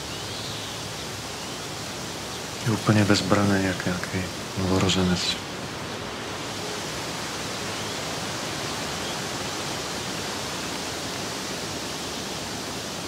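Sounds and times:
steady rushing hiss: 0:00.0 - 0:13.0.

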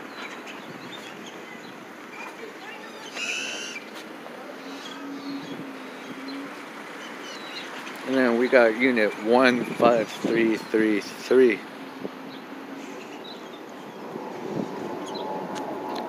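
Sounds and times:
traffic: 0:00.0 - 0:16.0.

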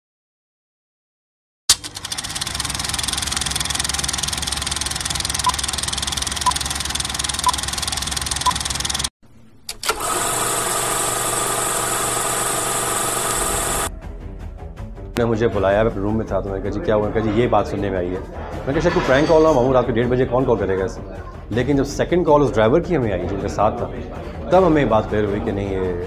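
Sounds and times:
film projector clattering: 0:01.7 - 0:09.1, 0:09.7 - 0:13.9
steady buzzing: 0:01.8 - 0:09.1, 0:09.8 - 0:13.9
projector click: 0:09.7 - 0:11.2, 0:12.5 - 0:13.9.

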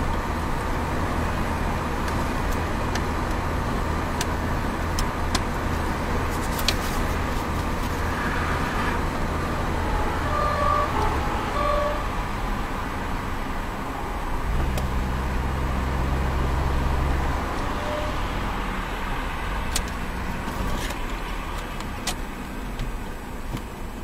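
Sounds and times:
deep engine drone: 0:00.0 - 0:20.4
car engine hum: 0:00.0 - 0:24.0
tyre and road noise: 0:00.0 - 0:24.0.

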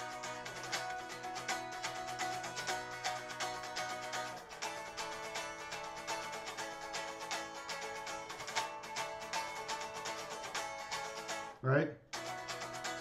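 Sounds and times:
electric guitar strumming chords: 0:00.0 - 0:11.6, 0:12.2 - 0:13.0.

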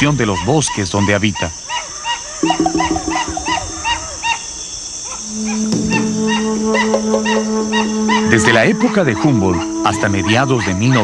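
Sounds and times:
high insect drone: 0:00.0 - 0:11.0.

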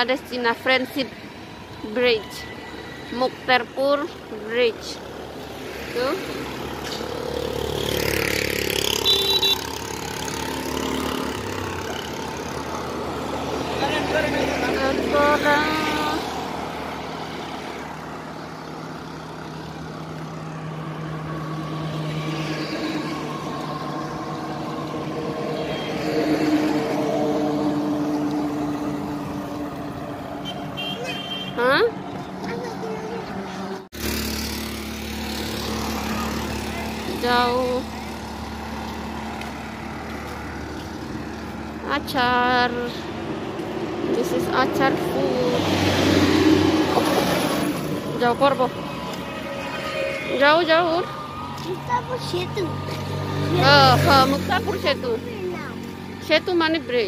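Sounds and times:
traffic driving past: 0:00.0 - 0:57.0.

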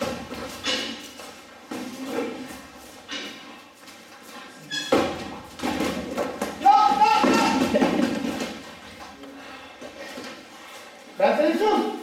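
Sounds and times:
echoing gym hall noise: 0:00.0 - 0:12.0
person calling out: 0:06.6 - 0:07.6.

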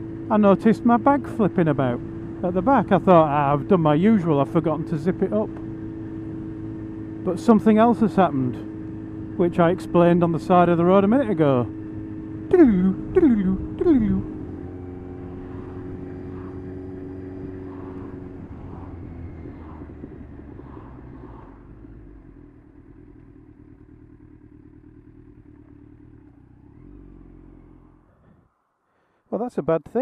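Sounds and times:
motorcycle engine slowing down: 0:00.0 - 0:28.8.

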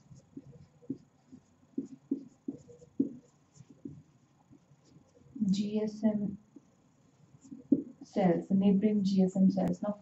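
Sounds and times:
marker writing on whiteboard: 0:00.0 - 0:05.7, 0:06.5 - 0:08.3.

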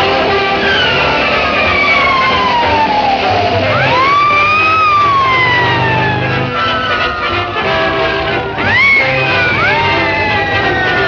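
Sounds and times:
orchestral music: 0:00.0 - 0:11.0.

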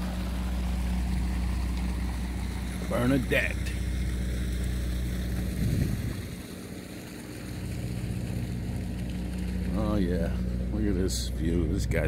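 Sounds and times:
machinery humming: 0:00.0 - 0:12.0
wind rumbling on microphone: 0:05.1 - 0:06.6.

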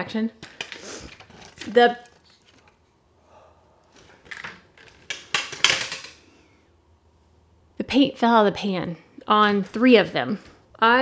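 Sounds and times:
paint cakes clicking and rattling: 0:03.9 - 0:06.3.

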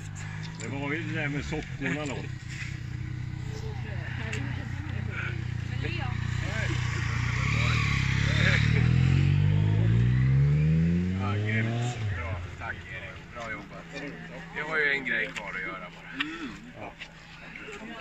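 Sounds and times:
vehicle accelerating past: 0:00.0 - 0:16.1
quiet voices talking: 0:00.0 - 0:18.0.

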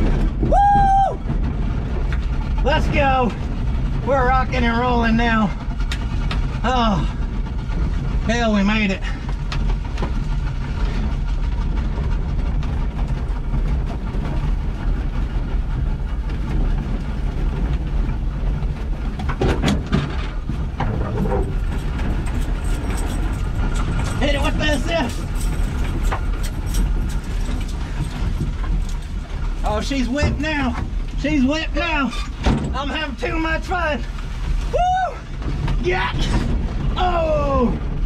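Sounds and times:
body rattles and knocks: 0:00.0 - 0:38.0
pickup truck rumbling over rough ground: 0:00.0 - 0:38.0.

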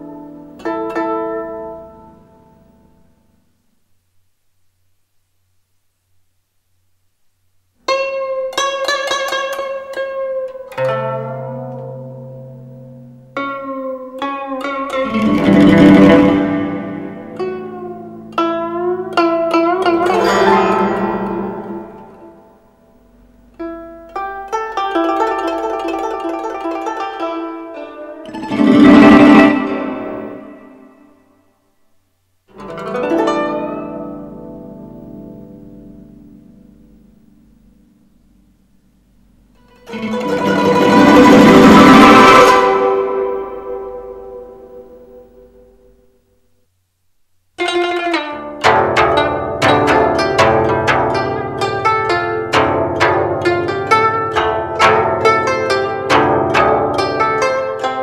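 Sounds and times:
plucked zither music: 0:00.0 - 0:03.1, 0:07.8 - 0:31.2, 0:32.5 - 0:37.6, 0:39.6 - 0:46.0, 0:47.6 - 0:58.0.

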